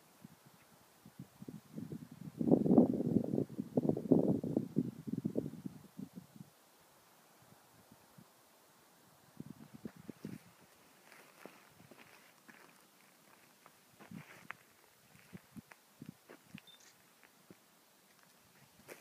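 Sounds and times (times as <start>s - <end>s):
wind buffeting microphone: 1.0s - 6.5s, 9.4s - 10.6s
footsteps on rocky ground: 9.8s - 19.0s.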